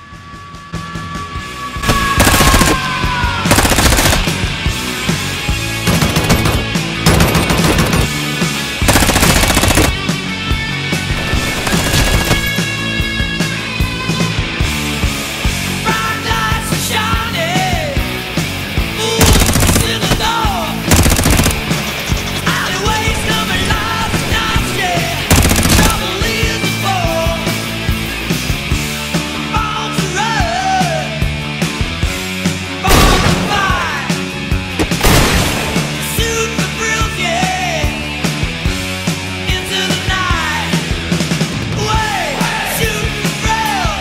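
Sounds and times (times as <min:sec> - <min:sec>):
background music: 0:00.0 - 0:44.0
automatic gunfire bursts: 0:01.9 - 0:02.8, 0:03.5 - 0:04.5, 0:05.9 - 0:08.2, 0:08.8 - 0:10.1, 0:11.2 - 0:12.6, 0:19.2 - 0:22.4, 0:25.3 - 0:26.2.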